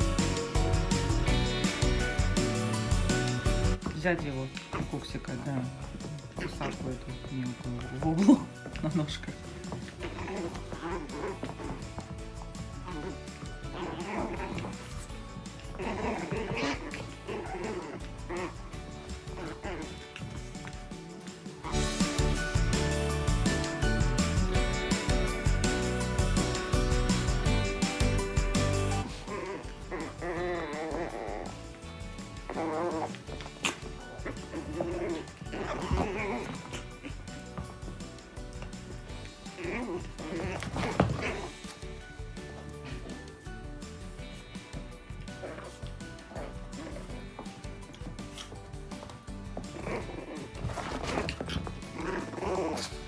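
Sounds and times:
background music: 0:00.0 - 0:53.0
small dogs yapping: 0:09.8 - 0:12.1, 0:12.8 - 0:20.2, 0:29.0 - 0:31.7, 0:32.4 - 0:37.5, 0:49.7 - 0:53.0.

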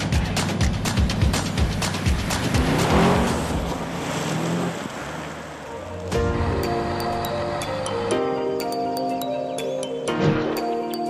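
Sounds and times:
background music with a beat: 0:00.0 - 0:03.6
car driving past: 0:02.5 - 0:06.1.

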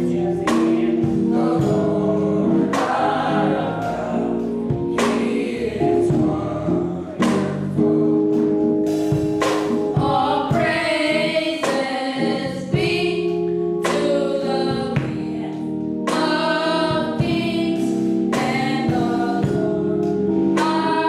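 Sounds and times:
young men singing in harmony: 0:00.0 - 0:08.6
sharp beat: 0:00.0 - 0:10.9.

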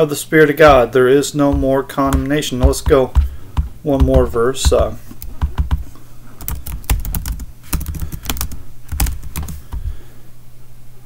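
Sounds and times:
computer keyboard typing: 0:01.5 - 0:09.9.

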